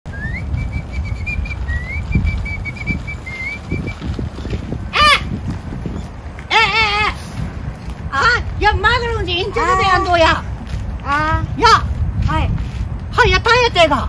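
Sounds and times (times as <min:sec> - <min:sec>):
person whistling a tune: 0:00.1 - 0:04.0
low rumbling noise: 0:00.1 - 0:13.2
wavering high-pitched voice: 0:09.4 - 0:10.4
short high vocal cry: 0:09.5 - 0:10.4.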